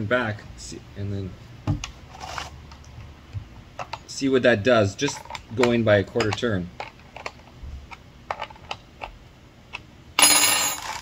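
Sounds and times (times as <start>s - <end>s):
saw chain metallic rattle: 10.2s - 11.0s.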